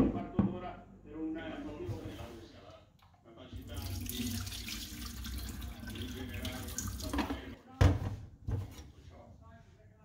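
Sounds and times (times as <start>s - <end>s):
liquid splashing into steel sink: 3.6s - 7.6s.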